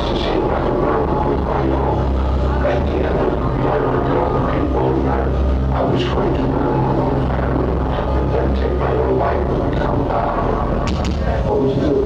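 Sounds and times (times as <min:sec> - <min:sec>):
distorted low guitars and bass: 0:00.0 - 0:12.0
drums: 0:05.7 - 0:12.0.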